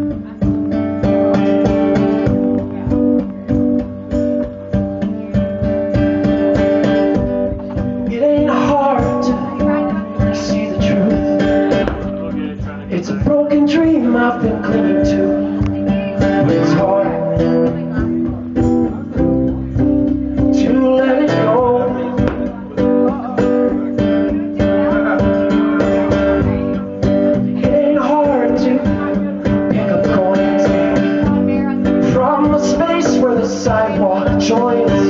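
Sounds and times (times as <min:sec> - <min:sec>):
bass guitar: 0:00.0 - 0:35.0
cajon beat: 0:00.0 - 0:35.0
strummed acoustic guitar: 0:00.0 - 0:35.0.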